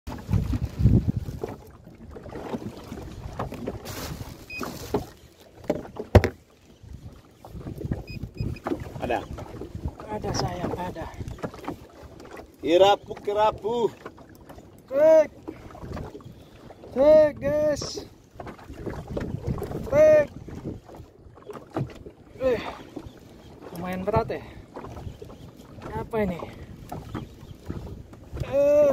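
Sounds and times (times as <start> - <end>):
wind buffeting microphone: 0.1 - 5.1, 6.1 - 14.4, 15.2 - 28.9
boat water noise: 0.1 - 28.9.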